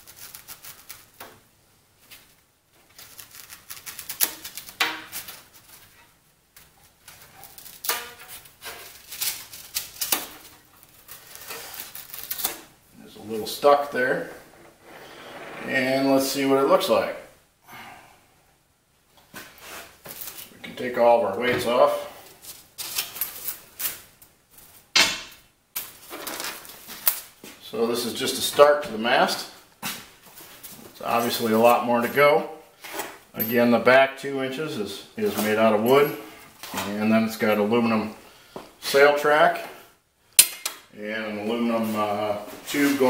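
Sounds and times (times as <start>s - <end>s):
handling rubs and scrapes: 13.2s - 16.4s
short squeaks: 14.3s - 15.9s.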